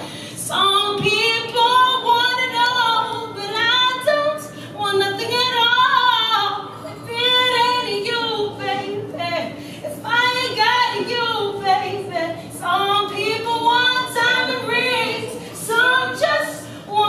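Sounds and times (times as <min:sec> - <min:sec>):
woman singing unaccompanied: 0:00.4 - 0:17.0.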